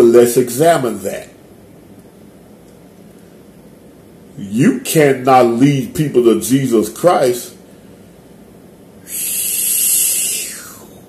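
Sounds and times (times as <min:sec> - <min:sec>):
man exhaling breathily: 0:09.0 - 0:11.0.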